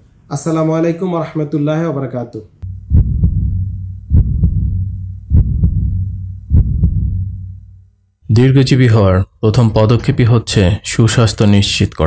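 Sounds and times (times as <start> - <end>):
heartbeat thumps: 2.6 - 7.9
low hum: 2.6 - 8.2.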